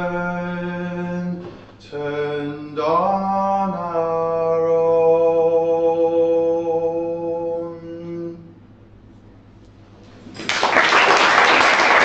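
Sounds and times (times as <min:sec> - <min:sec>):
man singing a long note: 0:00.0 - 0:08.6.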